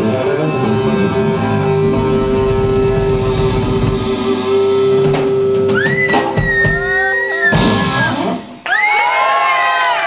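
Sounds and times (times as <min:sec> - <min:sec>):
electric guitar sustained note: 0:00.0 - 0:06.5
rock band low rumble: 0:00.0 - 0:08.2.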